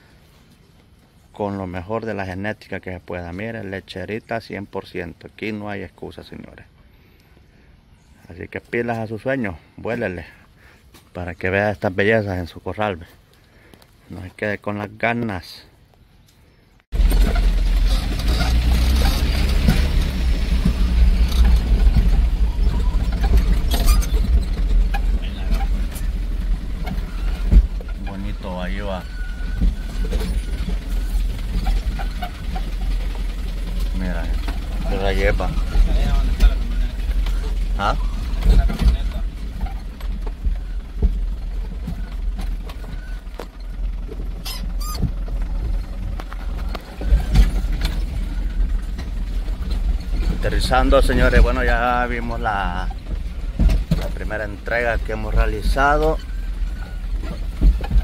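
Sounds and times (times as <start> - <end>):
vehicle cabin rumble: 16.8 - 58.0
body rattles and knocks: 16.9 - 58.0
brief high squeaks: 22.4 - 26.1, 26.8 - 32.7, 44.4 - 45.2.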